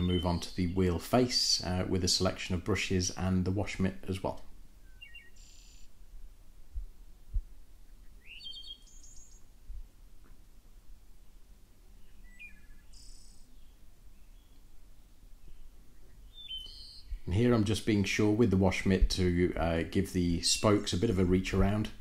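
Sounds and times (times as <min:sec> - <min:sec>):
faint bird chirps: 0:04.8 - 0:06.0, 0:07.8 - 0:09.6, 0:11.2 - 0:17.3
low thumps: 0:06.2 - 0:07.6.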